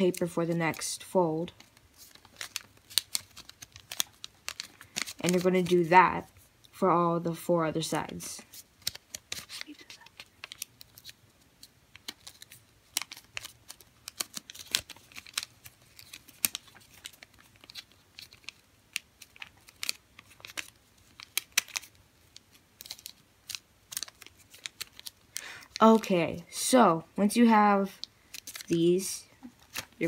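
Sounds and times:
paper being folded and creased: 0:00.0 - 0:06.4, 0:08.4 - 0:26.1, 0:27.8 - 0:28.8, 0:29.4 - 0:30.0.

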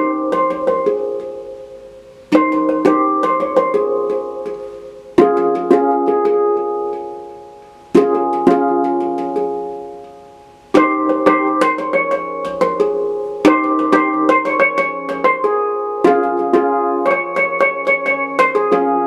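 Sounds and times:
handpan notes ringing: 0:00.0 - 0:19.0.

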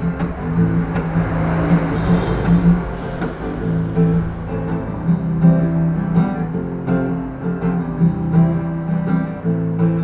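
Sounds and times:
acoustic guitar strumming chords: 0:00.0 - 0:10.0.

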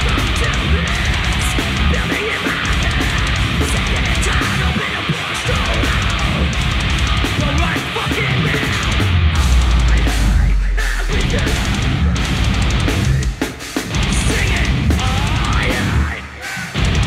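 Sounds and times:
vocalist screaming: 0:00.0 - 0:09.5
metalcore band playing: 0:00.0 - 0:17.0.

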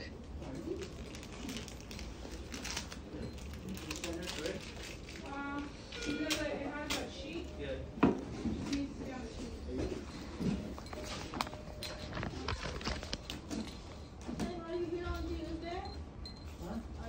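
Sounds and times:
handling noise: 0:08.0 - 0:15.5.

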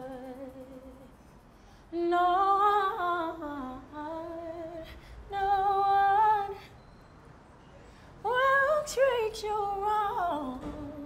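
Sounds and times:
woman singing unaccompanied: 0:00.0 - 0:01.1, 0:01.9 - 0:06.7, 0:08.2 - 0:11.0.

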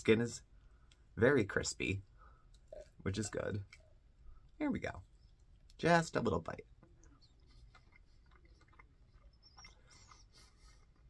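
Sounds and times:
person chewing crispy food: 0:07.4 - 0:11.0.

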